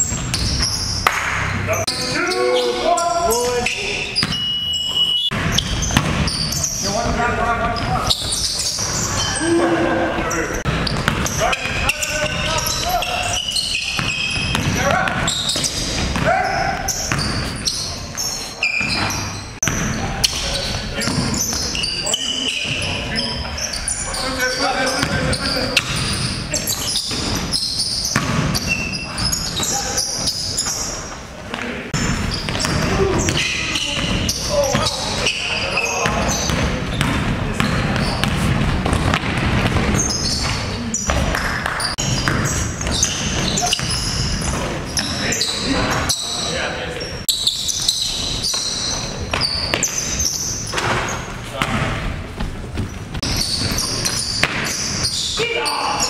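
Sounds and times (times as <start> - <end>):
players calling out: 0.2 - 52.1
basketball bouncing on hardwood floor: 5.3 - 6.4, 10.7 - 11.8, 14.0 - 17.5, 32.0 - 33.4, 36.0 - 44.0.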